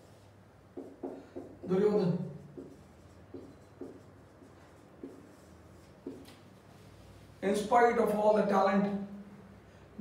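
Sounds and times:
marker writing on whiteboard: 0.0 - 8.2.

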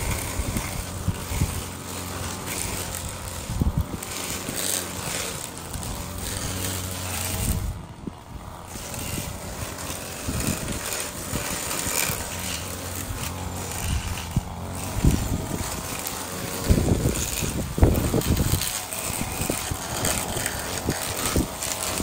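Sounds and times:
string trimmer cutting grass: 0.0 - 22.0.

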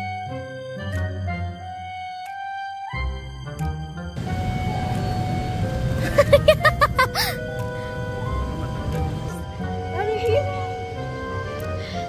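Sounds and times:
faint background music: 0.0 - 12.0
steady rumbling noise: 4.2 - 9.3.

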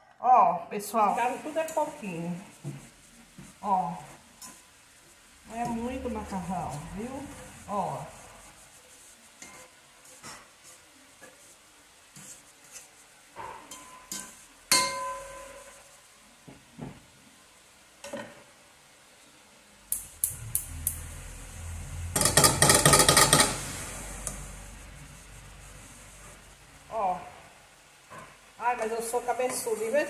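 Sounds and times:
stirring taps: 2.5 - 7.7, 8.3 - 13.0
gas flame rumble: 5.2 - 8.6, 19.9 - 27.7
gas stove igniter clicking: 19.9 - 21.0.

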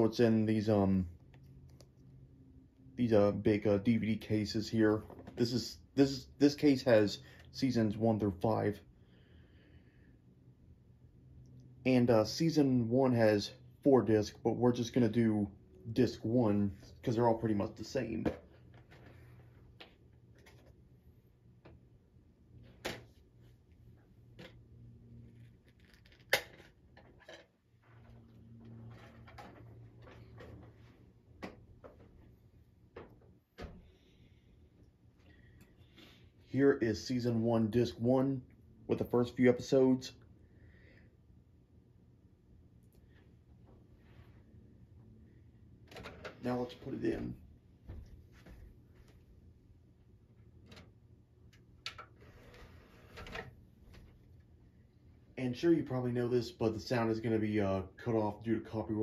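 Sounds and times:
low steady hum: 0.0 - 59.0.

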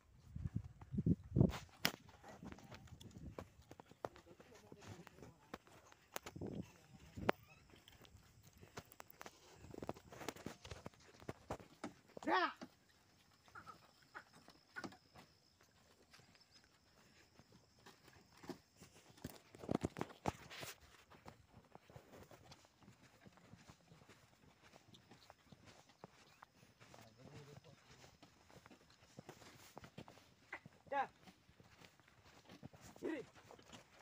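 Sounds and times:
footsteps on sandy dirt: 0.0 - 34.0
people walking: 0.0 - 34.0.

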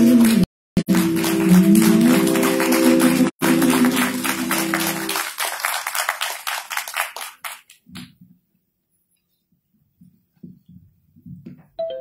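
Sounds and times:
audience applause: 0.0 - 8.1.

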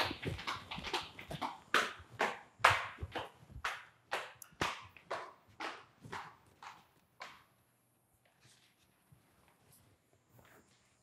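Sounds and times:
footsteps on tiled floor: 0.0 - 11.0.

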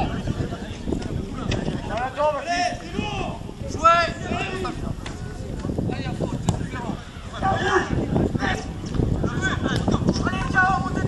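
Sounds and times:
distant shouts of players: 6.6 - 8.7.

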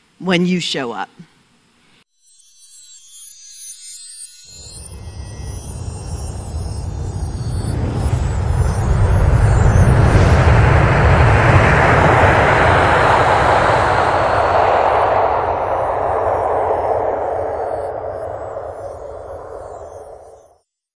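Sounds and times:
deep rumble: 4.8 - 20.4
long rushing whoosh: 4.8 - 20.4.

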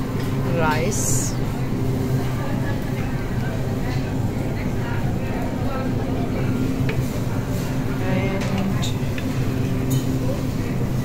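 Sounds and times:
diners chattering: 0.0 - 10.6.

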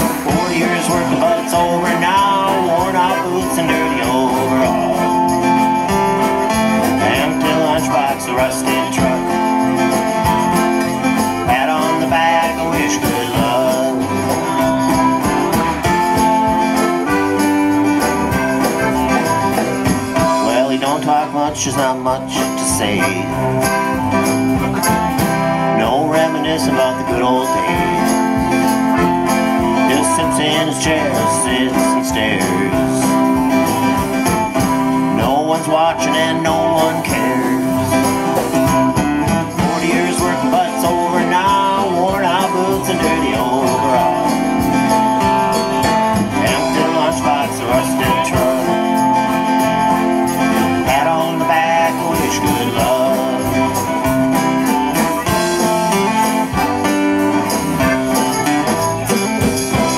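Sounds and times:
jingling percussion: 0.0 - 59.9
live band playing: 0.0 - 59.9.

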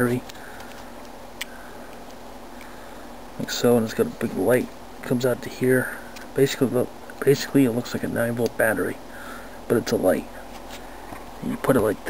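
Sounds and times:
steady low hiss: 0.0 - 12.0.

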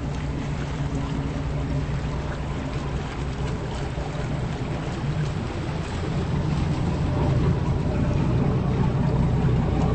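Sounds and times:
boat engine droning: 0.0 - 9.9.

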